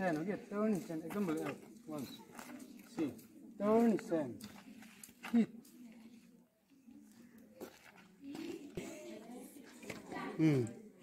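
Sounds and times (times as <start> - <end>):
faint indistinct voices: 0.6 - 11.0.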